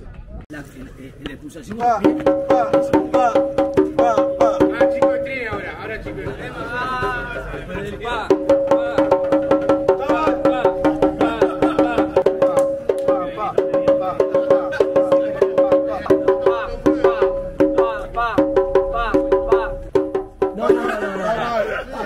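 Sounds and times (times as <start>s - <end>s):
hand drum rhythm: 2.0s - 7.2s, 8.2s - 21.2s.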